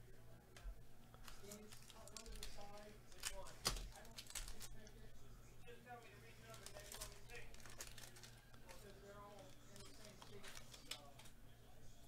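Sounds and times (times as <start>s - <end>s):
foil pack crinkling and tearing: 1.2s - 4.8s, 6.4s - 11.3s.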